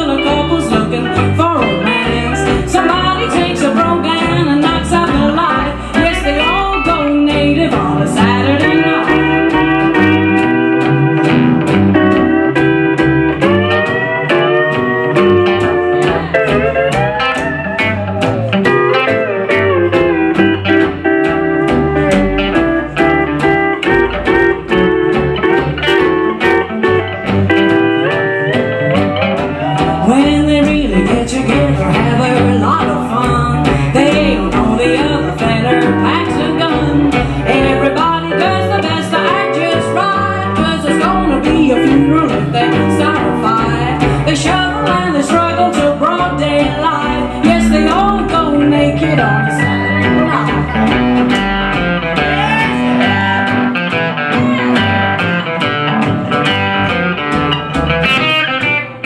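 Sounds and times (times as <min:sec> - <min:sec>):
strummed acoustic guitar: 0:00.0 - 0:59.0
upright bass: 0:00.0 - 0:59.0
steel guitar sliding notes: 0:00.1 - 0:59.0.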